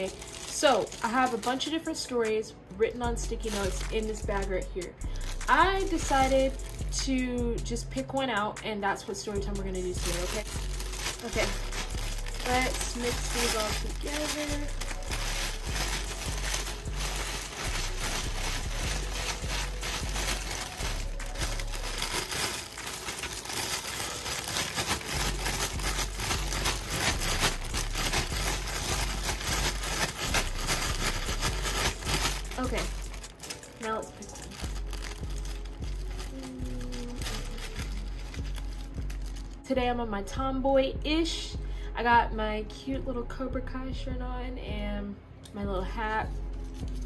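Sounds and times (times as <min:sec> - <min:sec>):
plastic bag crinkling: 0:00.0 - 0:02.2, 0:03.2 - 0:07.1, 0:09.2 - 0:39.6.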